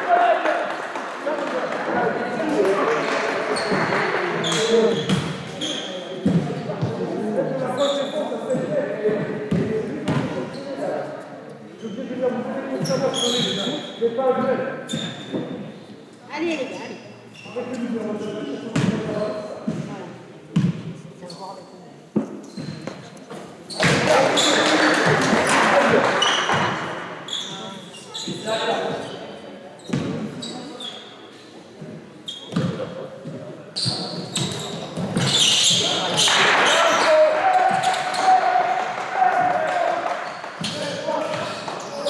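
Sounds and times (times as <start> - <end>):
sneakers squeaking: 2.6 - 8.7, 9.3 - 10.8, 11.7 - 14.0, 14.8 - 38.6, 39.4 - 42.0
basketball bouncing on court: 6.2 - 7.0, 18.7 - 19.9, 29.9 - 30.2, 32.5 - 36.2
players calling out: 33.8 - 42.0
crowd cheering and shouting: 36.3 - 40.1.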